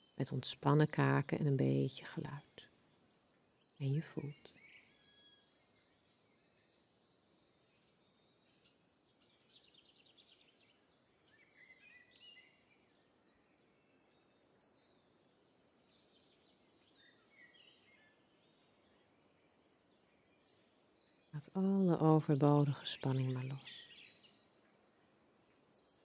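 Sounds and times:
faint birdsong chirps: 0.0s - 26.0s.

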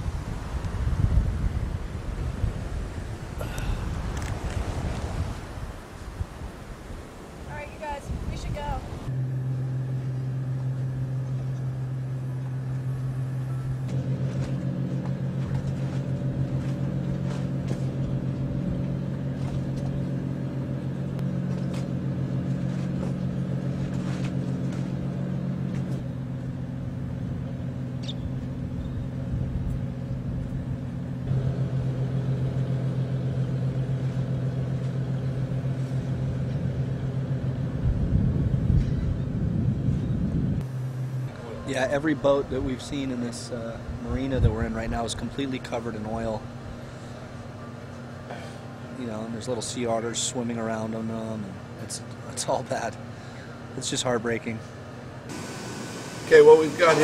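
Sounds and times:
engine running at low speed: 0.0s - 6.3s, 7.5s - 57.0s.

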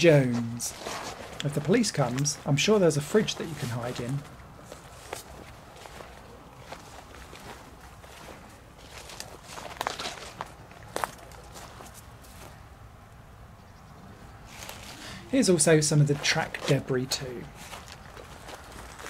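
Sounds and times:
plants brushing: 0.0s - 12.6s, 14.5s - 15.2s
footsteps through long grass: 0.0s - 12.7s, 14.4s - 19.0s.

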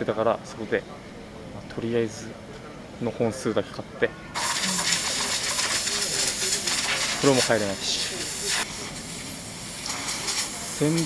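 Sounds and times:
faint voice fragments: 4.2s - 9.2s.

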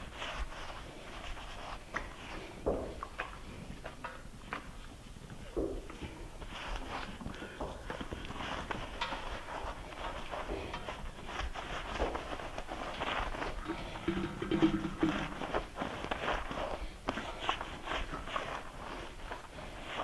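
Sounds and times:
wet squishing and rubbing: 0.0s - 20.0s.

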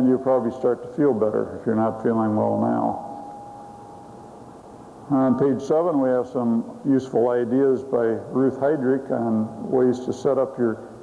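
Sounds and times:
faint steady tone: 0.0s - 11.0s
recording hiss: 0.0s - 11.0s.

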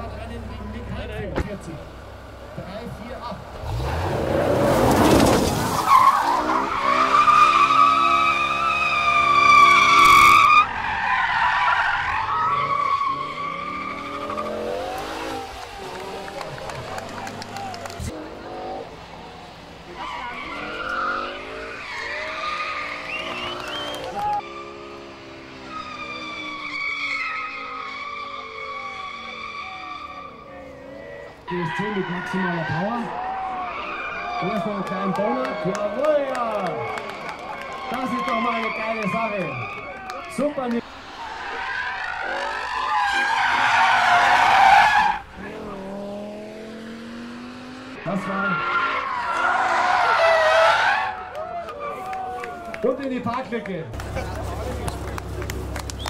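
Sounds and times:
car engine revving: 0.0s - 51.2s, 53.9s - 56.0s
tyres squealing: 3.6s - 18.1s, 19.9s - 24.8s, 25.6s - 45.8s, 47.9s - 52.1s.

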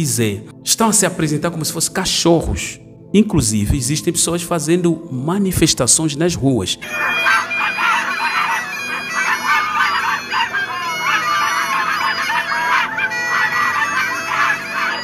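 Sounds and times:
people imitating dogs yipping: 6.8s - 15.0s.

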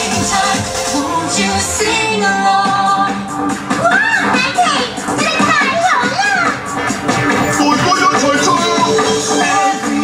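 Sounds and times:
parade music over loudspeakers: 0.0s - 10.0s
voices gliding in pitch: 7.4s - 9.3s.

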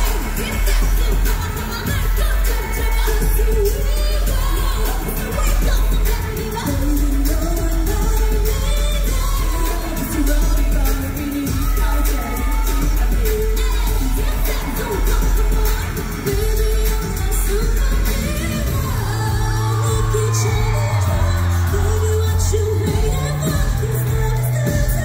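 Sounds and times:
pop backing track with bass: 0.0s - 25.0s
women singing pop song: 0.0s - 25.0s.

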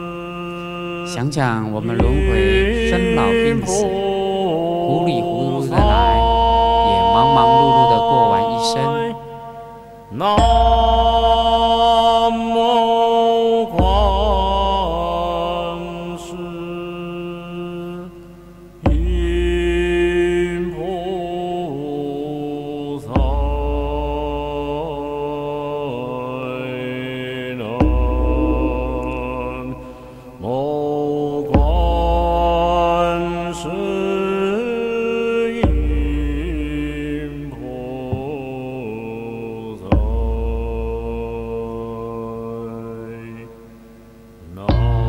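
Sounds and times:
buddhist chanting: 0.0s - 43.8s, 44.4s - 45.0s
deep low drone: 27.6s - 30.6s.

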